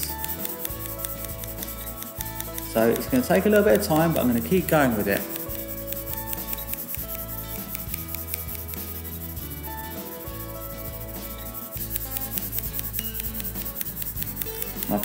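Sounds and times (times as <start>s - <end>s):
pencil scratching on paper: 0.0s - 15.0s
soft background music: 0.0s - 15.0s.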